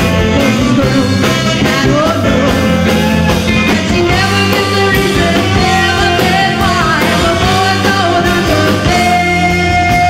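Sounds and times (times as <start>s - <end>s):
drum kit beat: 0.0s - 10.0s
live band playing: 0.0s - 10.0s.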